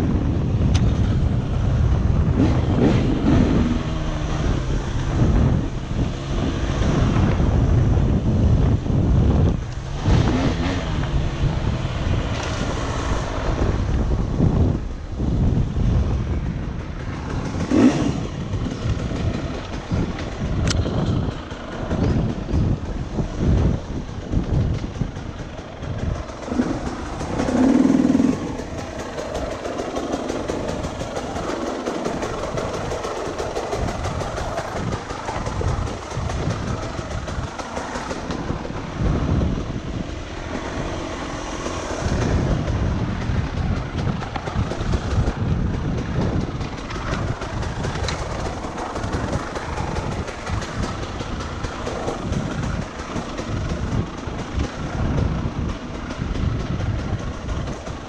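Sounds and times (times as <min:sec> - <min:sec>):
bike knocks and rattles: 0:00.1 - 0:58.0
dirt bike engine revving: 0:02.1 - 0:14.8, 0:17.3 - 0:23.8, 0:25.8 - 0:43.4.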